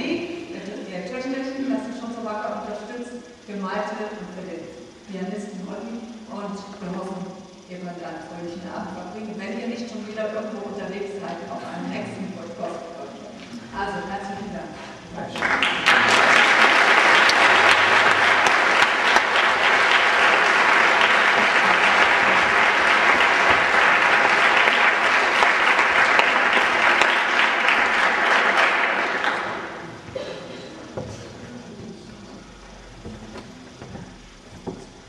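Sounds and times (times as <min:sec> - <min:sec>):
people applauding: 0:15.3 - 0:30.0.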